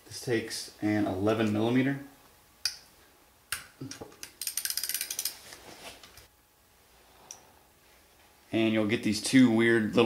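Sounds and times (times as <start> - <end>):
socket ratchet clicking: 4.2 - 5.4.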